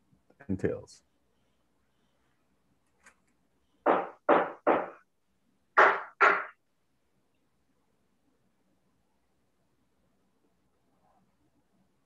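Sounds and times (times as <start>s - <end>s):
sharp knocks: 3.8s - 5.0s, 5.8s - 6.6s.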